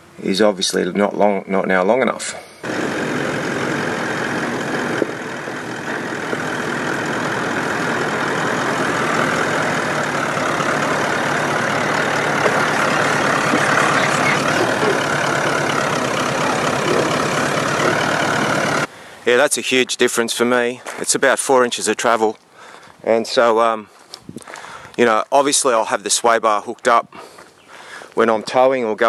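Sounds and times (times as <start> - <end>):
diesel engine running at low revs: 2.6 - 18.9.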